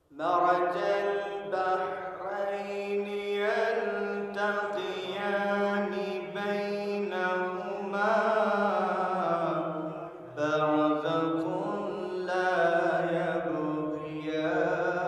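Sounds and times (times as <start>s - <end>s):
man reciting melodically: 0.0s - 15.0s.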